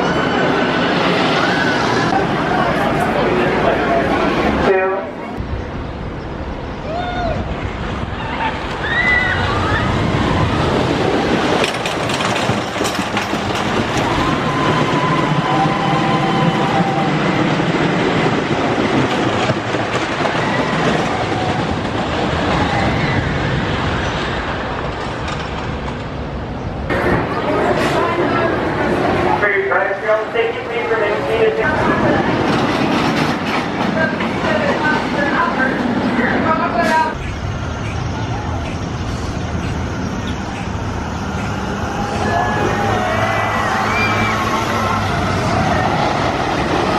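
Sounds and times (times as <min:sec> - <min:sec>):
roller coaster rumbling on track: 0:00.0 - 0:46.9.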